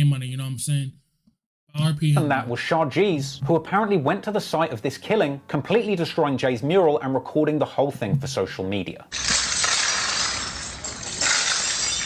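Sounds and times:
glass smashing on pavement: 0:09.1 - 0:12.0.

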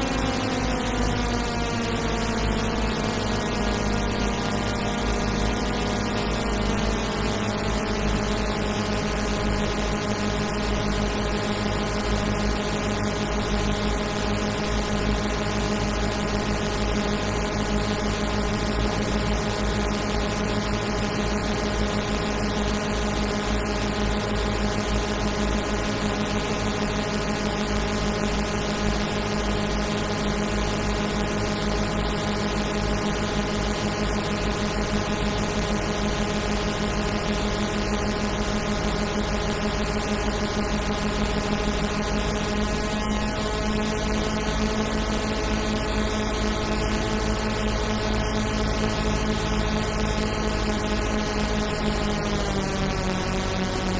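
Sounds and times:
deep low hum: 0:00.0 - 0:11.1
synthesizer drone: 0:00.0 - 0:53.9.

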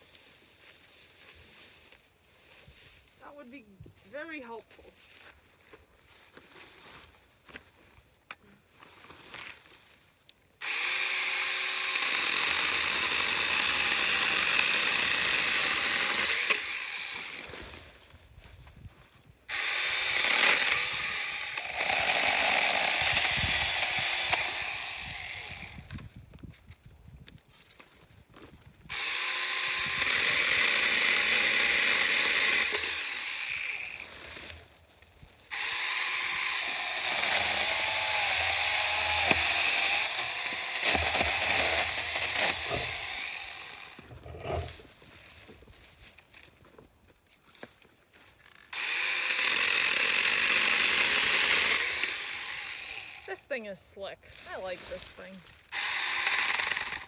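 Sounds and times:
electric chainsaw cutting branches: 0:10.6 - 0:18.0, 0:19.5 - 0:26.2, 0:28.9 - 0:34.8, 0:35.5 - 0:45.0, 0:48.5 - 0:57.0.

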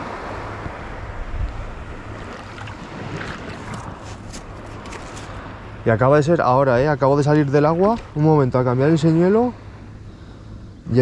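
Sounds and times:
wind on microphone: 0:00.0 - 0:05.4.

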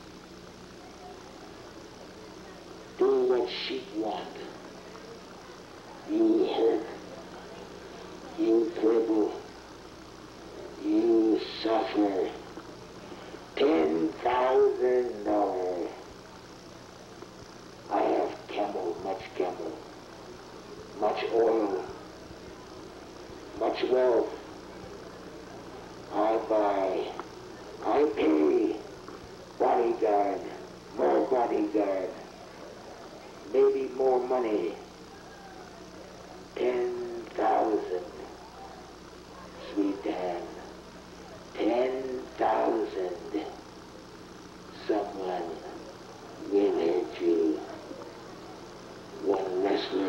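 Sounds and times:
faint low hum: 0:00.0 - 0:50.0
man speaking on tape playback: 0:03.0 - 0:04.6, 0:06.0 - 0:09.6, 0:10.6 - 0:16.1, 0:17.9 - 0:20.0, 0:20.9 - 0:22.1, 0:23.2 - 0:24.7, 0:26.0 - 0:32.4, 0:33.4 - 0:35.0, 0:36.4 - 0:40.8, 0:41.4 - 0:43.7, 0:44.7 - 0:48.0, 0:49.0 - 0:50.0
muffled recorded man's voice: 0:03.0 - 0:04.6, 0:05.9 - 0:09.5, 0:10.6 - 0:16.1, 0:17.9 - 0:20.0, 0:20.9 - 0:22.1, 0:23.4 - 0:24.6, 0:26.0 - 0:32.4, 0:33.4 - 0:35.0, 0:36.4 - 0:40.8, 0:41.4 - 0:43.7, 0:44.7 - 0:48.2, 0:49.1 - 0:50.0.

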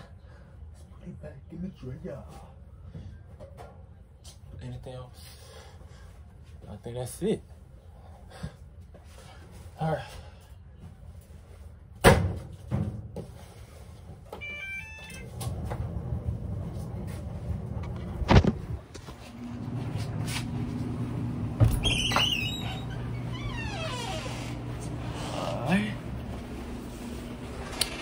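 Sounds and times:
dryer running hum: 0:13.7 - 0:28.0.

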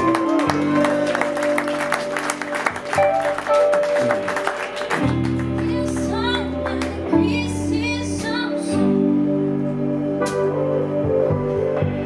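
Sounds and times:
band sustained chords: 0:00.0 - 0:12.0
woman singing: 0:05.6 - 0:09.1.

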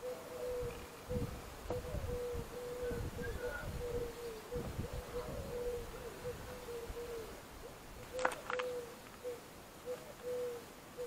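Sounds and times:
bird hooting: 0:00.0 - 0:11.0.

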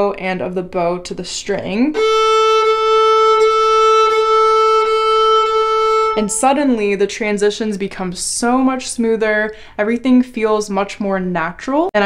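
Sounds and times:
violin long bowed note: 0:02.0 - 0:06.8.

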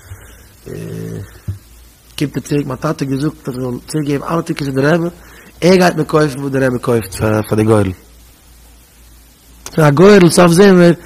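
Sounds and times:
man speaking into a microphone: 0:02.2 - 0:08.0, 0:09.7 - 0:11.0.

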